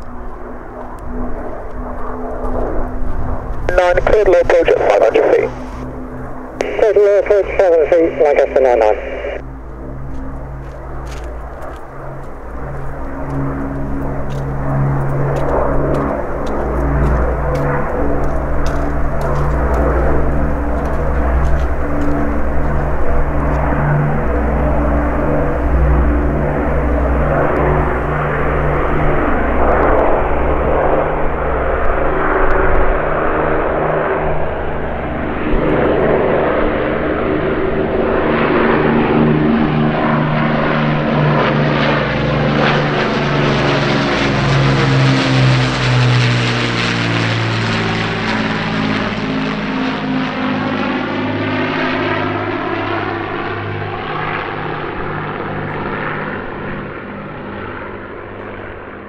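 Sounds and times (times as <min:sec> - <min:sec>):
propeller aircraft engines droning: 0:00.0 - 0:59.0.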